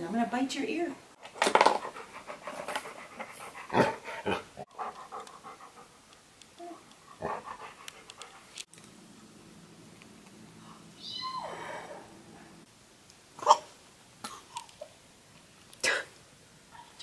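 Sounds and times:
dog panting: 1.8 - 6.2, 6.9 - 8.6.

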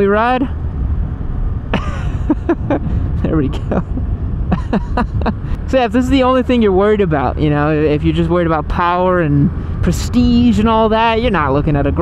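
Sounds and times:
motorcycle engine rumble: 0.0 - 12.0
wind noise: 0.0 - 12.0
person laughing: 1.7 - 5.7.

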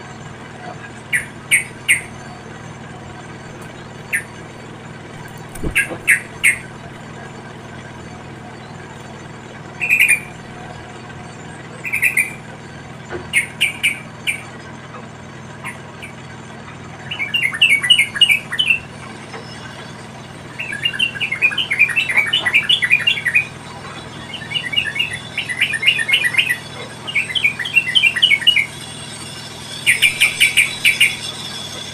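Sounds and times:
bird chirping: 1.0 - 11.0, 11.8 - 12.4, 20.5 - 31.9.

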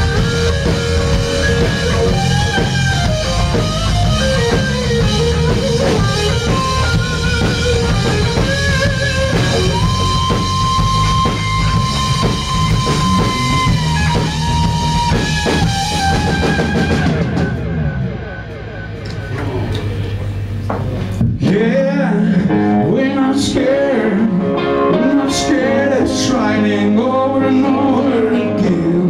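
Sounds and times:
electric guitar bending note: 0.0 - 21.3
drum kit: 0.0 - 21.8
electric bass: 0.0 - 29.0.

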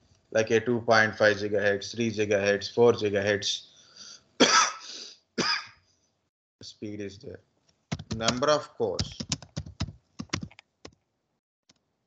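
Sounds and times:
man coughing: 4.4 - 5.8.

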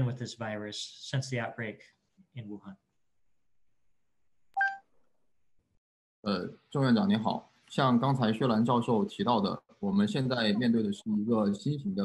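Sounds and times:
short electronic beep: 4.6 - 4.8.

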